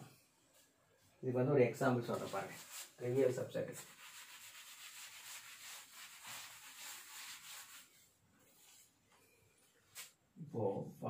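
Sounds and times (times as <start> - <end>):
man talking: 1.2 - 3.8, 10.4 - 11.0
cloth wiping blackboard: 1.8 - 9.1.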